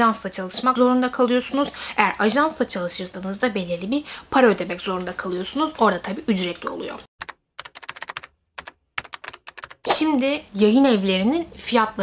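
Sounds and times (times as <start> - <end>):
computer keyboard typing: 7.2 - 9.9.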